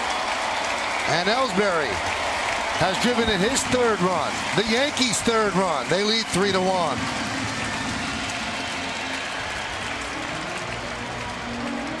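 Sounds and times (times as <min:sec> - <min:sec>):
crowd clapping: 0:00.0 - 0:12.0.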